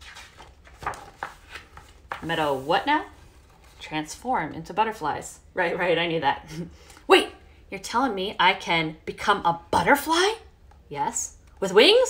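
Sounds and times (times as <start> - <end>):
book pages rustling and tapping: 0.0 - 2.6.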